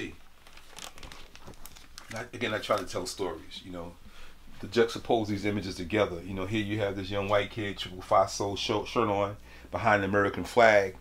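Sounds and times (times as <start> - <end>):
plastic page crinkling and rustling: 0.0 - 3.4.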